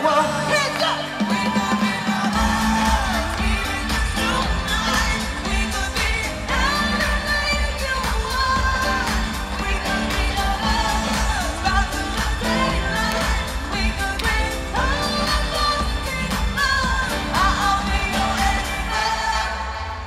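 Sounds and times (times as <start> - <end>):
electronic pop music over loudspeakers: 0.0 - 20.0
person singing: 0.0 - 20.0
heavy bass beat: 1.4 - 18.9.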